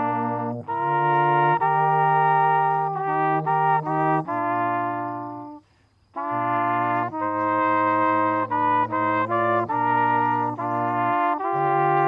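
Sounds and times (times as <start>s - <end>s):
brass trio playing sustained chords: 0.0s - 5.6s, 6.2s - 12.0s.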